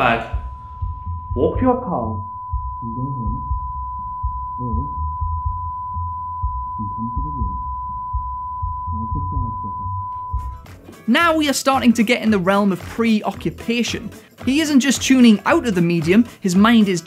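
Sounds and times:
high ringing tone: 0.0 - 10.7.

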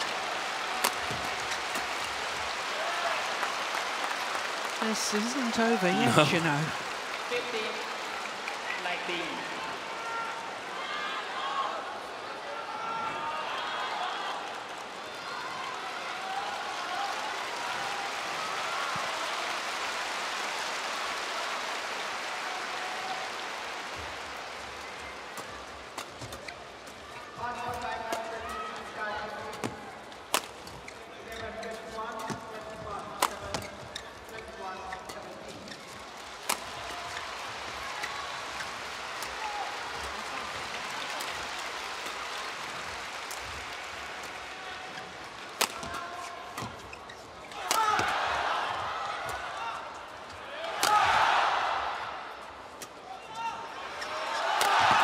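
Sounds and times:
murmur of spectator voices: 4.8 - 6.9
rackets striking shuttlecock: 45.6 - 46.0
spectators shouting: 47.5 - 52.4, 53.2 - 55.0.

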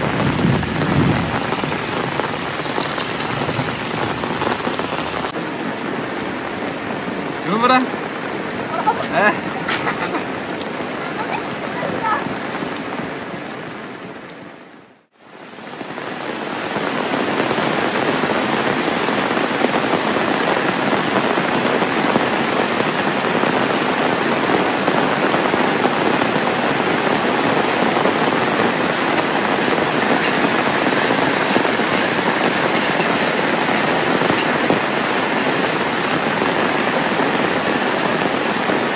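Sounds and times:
heavy rain falling: 0.0 - 38.9.

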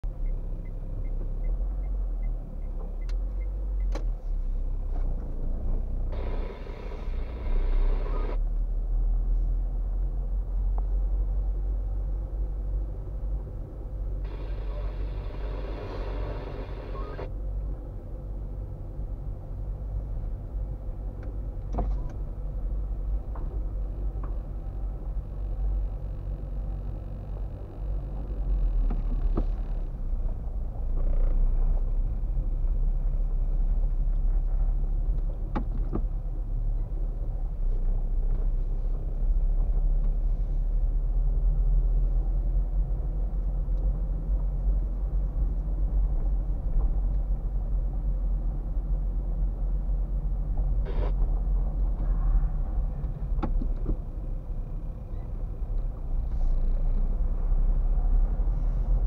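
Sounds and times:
engine and road rumble: 0.0 - 59.0.

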